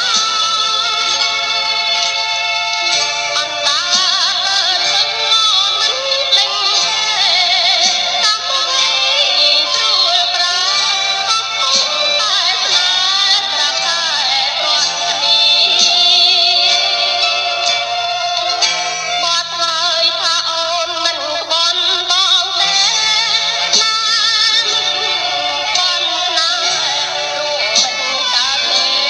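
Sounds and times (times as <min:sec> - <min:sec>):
instrumental backing music: 0:00.0 - 0:29.0
woman singing with vibrato: 0:00.0 - 0:29.0.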